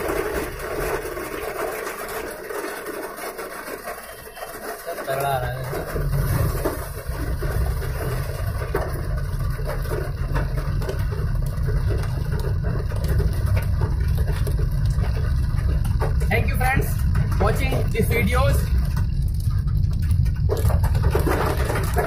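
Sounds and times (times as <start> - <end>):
heavy rain drumming on car roof: 0.0 - 22.0
steady low rumble: 5.9 - 22.0.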